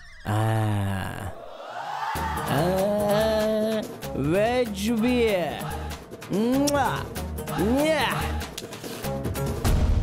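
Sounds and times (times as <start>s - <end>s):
man calling drawn-out aaa: 2.2s - 3.8s.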